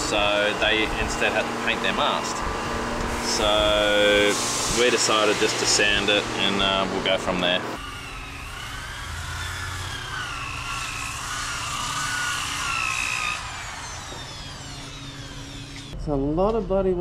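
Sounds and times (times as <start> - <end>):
power sander on metal: 0.0 - 16.0.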